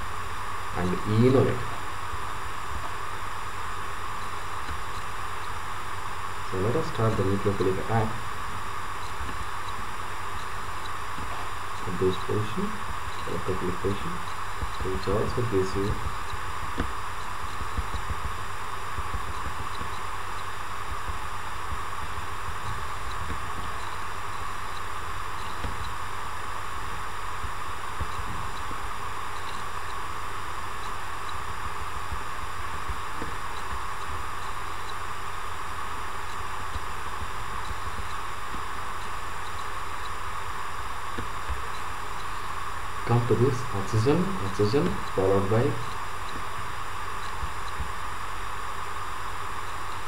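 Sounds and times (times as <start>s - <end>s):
background hiss: 0.0s - 50.0s
low hum: 0.0s - 50.0s.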